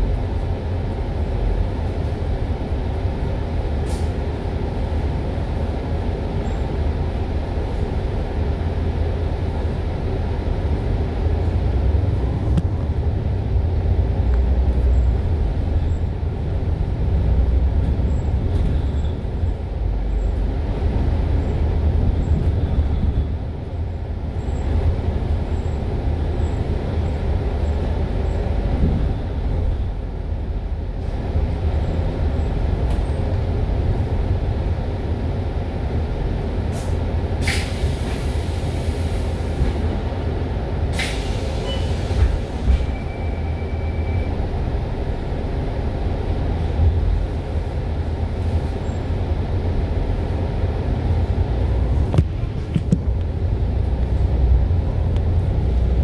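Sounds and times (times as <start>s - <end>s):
bus engine and road drone: 0.0s - 56.0s
air brake hiss: 3.8s - 4.2s, 36.7s - 39.7s, 40.9s - 42.9s.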